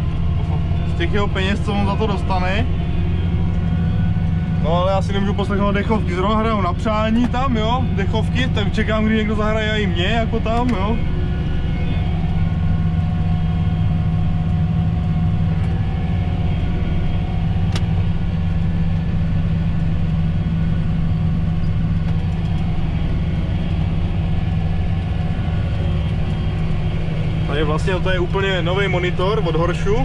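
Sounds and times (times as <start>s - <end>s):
tractor engine droning: 0.0s - 30.0s.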